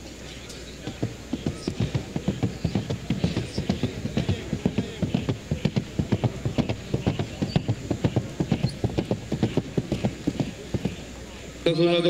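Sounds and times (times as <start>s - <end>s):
horse hoofbeats at a trot: 0.8s - 11.5s.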